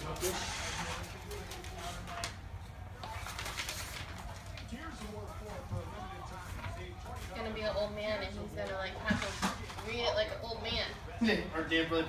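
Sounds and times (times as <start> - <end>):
paper rustling and crinkling: 0.0 - 7.8
faint low voices: 0.0 - 12.0.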